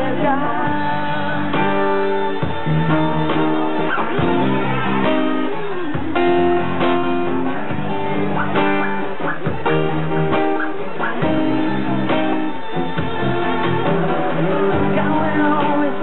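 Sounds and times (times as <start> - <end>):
acoustic guitar strumming chords: 0.0 - 16.0.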